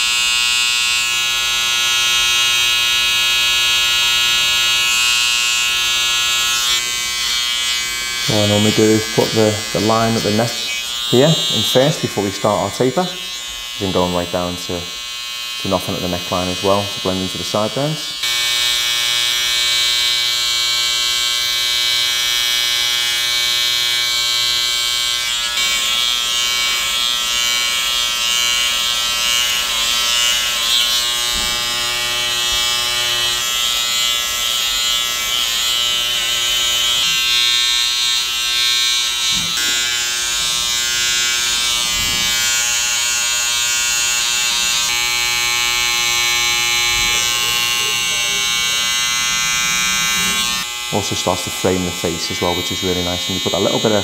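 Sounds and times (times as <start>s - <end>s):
electric hair clippers buzzing: 0.0s - 54.0s.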